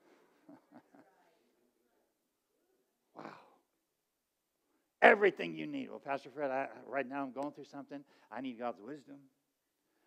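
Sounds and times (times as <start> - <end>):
faint breath: 8.0 - 8.3.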